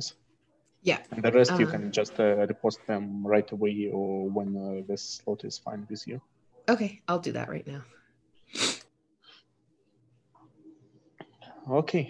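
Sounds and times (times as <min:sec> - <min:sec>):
person sneezing: 0:08.5 - 0:08.9.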